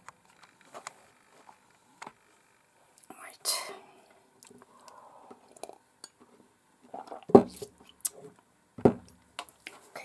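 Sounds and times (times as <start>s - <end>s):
person whispering: 3.0s - 5.3s.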